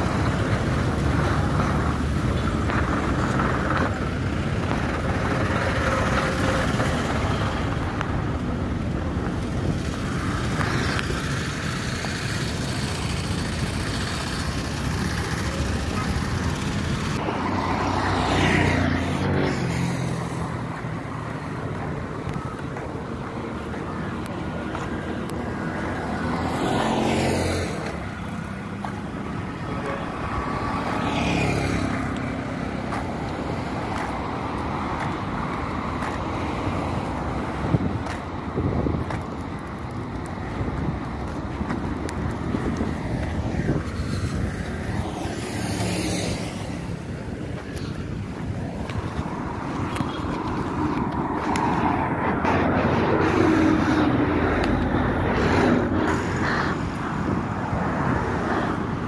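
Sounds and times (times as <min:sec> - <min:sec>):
steady hum of motor traffic: 0:00.0 - 0:59.0
vehicles passing close by: 0:00.0 - 0:59.0
motorcycle passing: 0:09.7 - 0:21.6, 0:25.2 - 0:34.2, 0:40.7 - 0:57.5.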